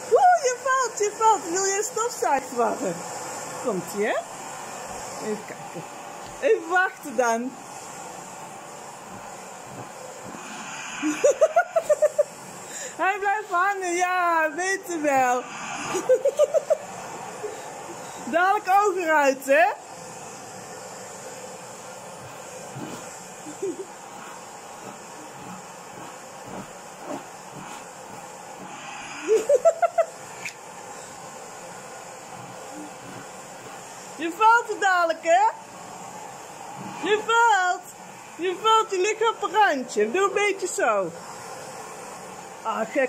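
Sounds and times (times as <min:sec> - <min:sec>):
vacuum cleaner running: 0:00.0 - 0:43.0.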